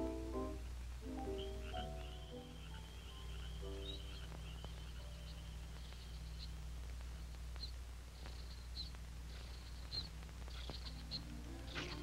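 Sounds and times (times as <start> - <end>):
soft orchestral music: 0.0 - 5.6
faint low hum: 0.0 - 12.0.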